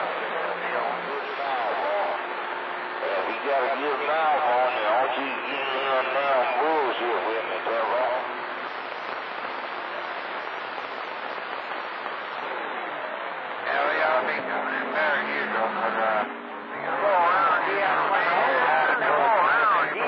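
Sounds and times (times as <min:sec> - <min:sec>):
radio static hiss: 0:00.0 - 0:20.0
distant voice over radio: 0:03.0 - 0:08.3, 0:13.6 - 0:20.0.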